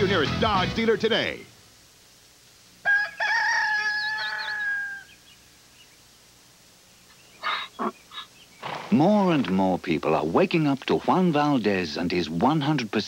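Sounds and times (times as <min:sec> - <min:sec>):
rooster crowing: 0:02.8 - 0:05.6
short breathy bursts: 0:07.4 - 0:08.9.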